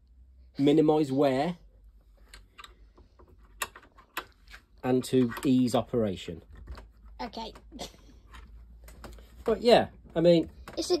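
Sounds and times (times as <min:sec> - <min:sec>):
vice clicking and knocking: 0:02.2 - 0:05.6, 0:06.5 - 0:09.2.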